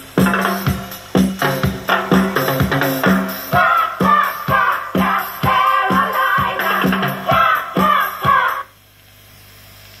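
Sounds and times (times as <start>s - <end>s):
song from speakers: 0.0s - 8.8s.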